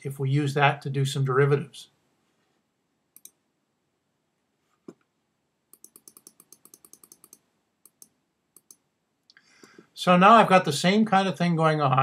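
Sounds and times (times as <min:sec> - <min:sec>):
mouse clicks: 0:03.2 - 0:03.4, 0:05.7 - 0:08.8
computer keyboard clicks: 0:05.8 - 0:08.8.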